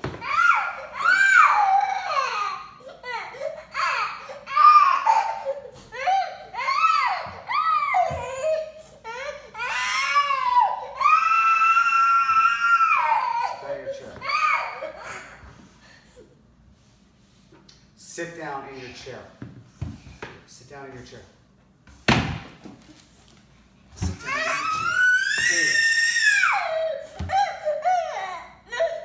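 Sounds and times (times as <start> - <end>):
toddler wailing: 0.0 - 15.5, 24.1 - 29.0.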